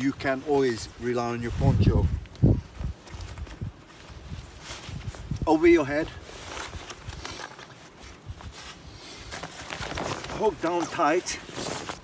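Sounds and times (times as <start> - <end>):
wind rumbling on microphone: 0.0 - 7.4, 8.0 - 10.6
poncho rustling and crinkling: 0.0 - 12.0.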